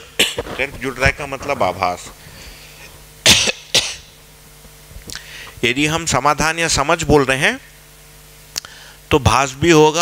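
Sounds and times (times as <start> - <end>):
person coughing: 0.2 - 0.6, 3.2 - 4.2.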